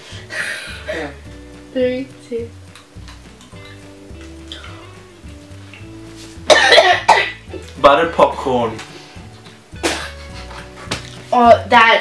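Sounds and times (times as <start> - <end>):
background music with held notes: 0.0 - 12.0
person coughing and gagging: 6.4 - 7.5, 9.8 - 10.5.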